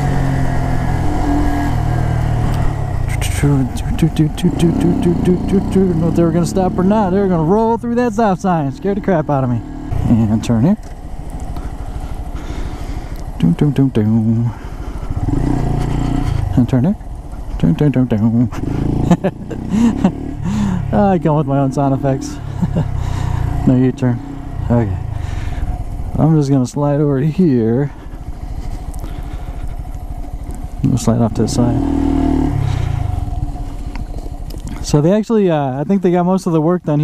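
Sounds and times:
motorcycle engine running: 0.0 - 37.0
wind and road noise: 0.0 - 37.0
person speaking: 3.0 - 10.8, 13.3 - 14.6, 16.4 - 25.4.

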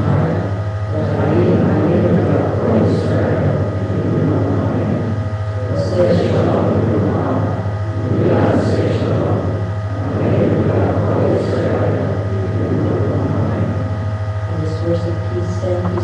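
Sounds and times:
congregation reading aloud together: 0.0 - 16.0
steady low hum: 0.0 - 16.0.

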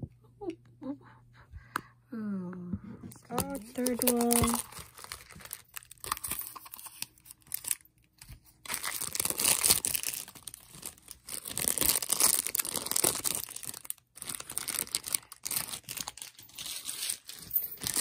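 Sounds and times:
plastic wrapper crinkling: 3.3 - 18.0.

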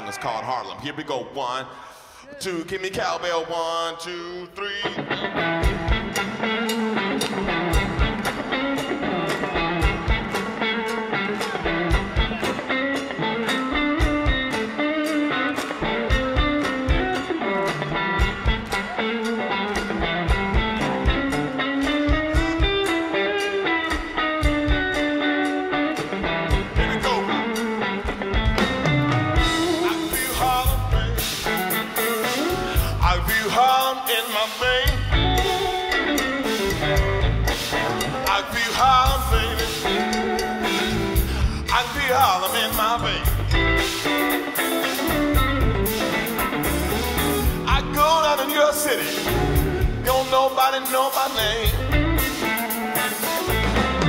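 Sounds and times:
electric blues band: 3.0 - 54.0
electric guitar lead lines: 4.6 - 54.0
drums with cymbals: 26.0 - 54.0.

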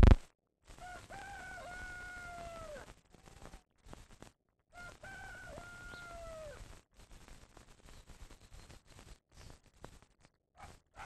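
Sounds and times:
rooster crowing: 0.8 - 2.9, 4.8 - 6.6.

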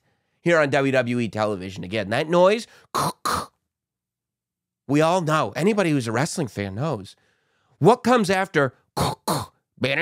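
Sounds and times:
man clearing throat: 3.0 - 3.6, 9.0 - 9.6.

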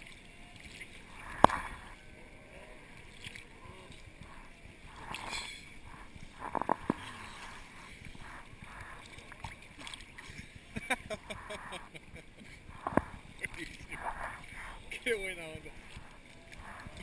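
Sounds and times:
sea water sloshing: 0.0 - 17.0.

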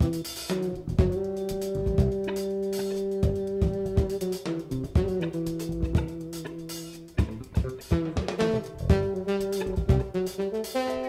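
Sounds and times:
jazz-funk band playing: 0.0 - 11.0.

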